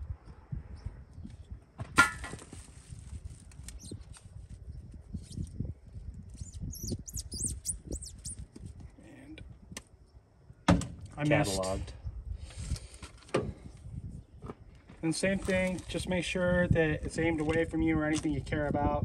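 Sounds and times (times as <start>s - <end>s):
wind rumble on microphone: 0.0s - 19.0s
rubber hose twisted and pulled: 2.4s - 5.6s, 15.2s - 16.0s
short high squeaks: 3.6s - 4.2s, 5.1s - 5.6s, 6.3s - 8.7s.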